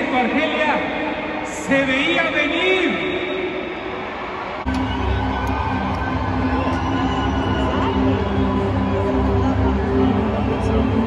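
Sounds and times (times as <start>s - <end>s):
stadium crowd noise: 0.0s - 11.0s
low droning music: 4.6s - 11.0s.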